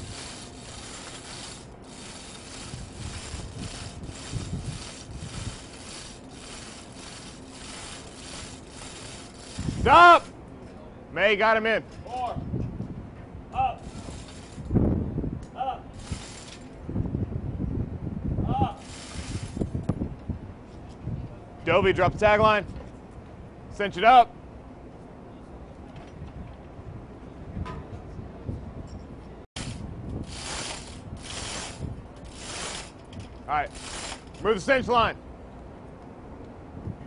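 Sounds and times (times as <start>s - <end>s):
chain rattling through hoist: 0.0s - 9.9s, 13.8s - 14.8s, 16.0s - 16.8s, 18.8s - 19.7s, 29.6s - 34.6s.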